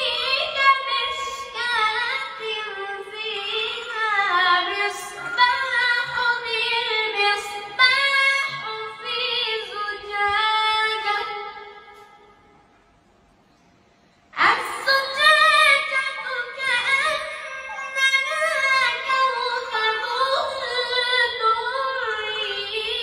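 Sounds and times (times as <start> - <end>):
boy chanting melodic recitation: 0.0 - 12.2, 14.4 - 23.0.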